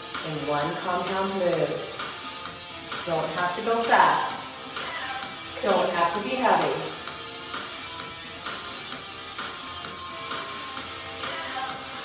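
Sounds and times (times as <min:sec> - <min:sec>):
workout music with light pulse: 0:00.0 - 0:12.0.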